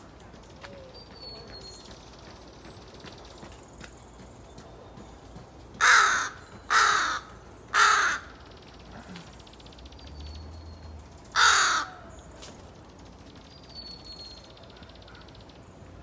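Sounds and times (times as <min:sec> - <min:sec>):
crow cawing: 0:05.8 - 0:08.4, 0:11.4 - 0:12.1.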